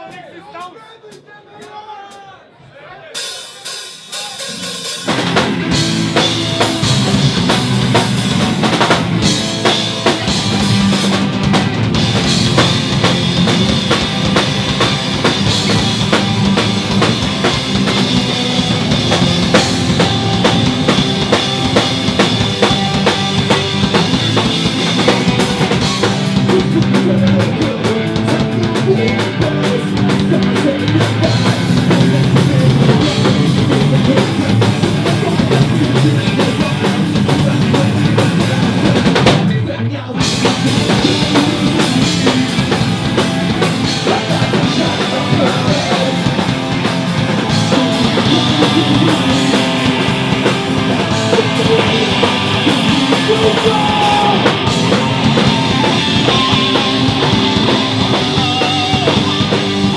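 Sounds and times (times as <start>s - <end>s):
rock band playing live: 3.1s - 59.9s.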